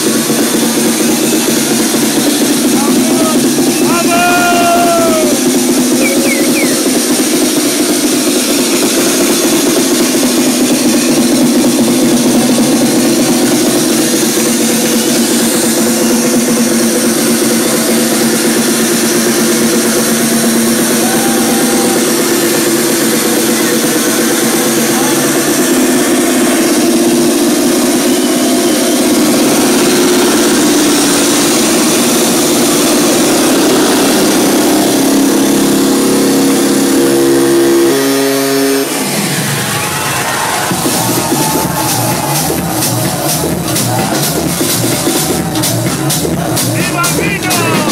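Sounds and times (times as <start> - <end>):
techno over club sound system: 0.0 - 47.9.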